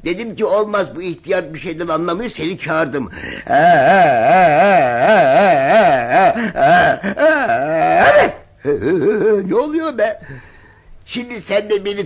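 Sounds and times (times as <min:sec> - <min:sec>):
man wailing with quavering pitch: 0:03.4 - 0:09.5.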